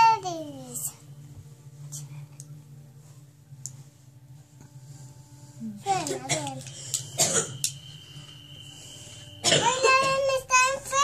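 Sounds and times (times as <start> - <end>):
person coughing: 6.2 - 7.6, 9.4 - 10.2.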